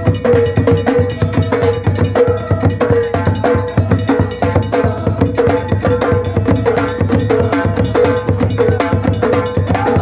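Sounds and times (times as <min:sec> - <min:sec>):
hand-played frame drums: 0:00.0 - 0:10.0
large drum beaten with sticks: 0:00.0 - 0:10.0.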